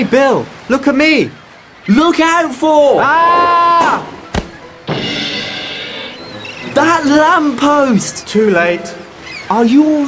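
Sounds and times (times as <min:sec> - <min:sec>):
sharp knock: 0:04.3 - 0:05.4.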